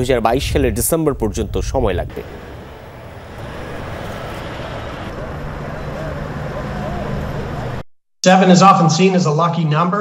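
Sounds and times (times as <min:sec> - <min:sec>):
traffic noise: 0:01.4 - 0:07.9.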